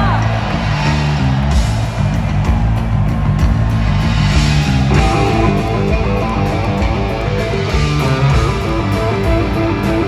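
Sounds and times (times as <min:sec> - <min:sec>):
live rock band playing: 0:00.0 - 0:10.0
electric guitars riff: 0:03.7 - 0:10.0.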